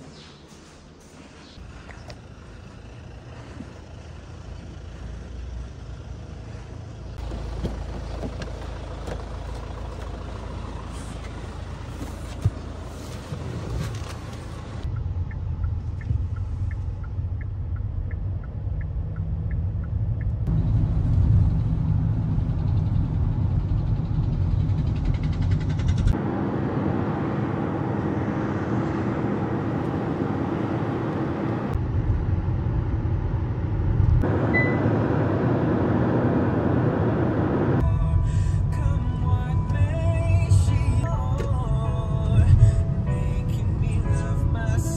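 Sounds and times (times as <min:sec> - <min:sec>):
car engine and road noise: 0:00.0 - 0:44.9.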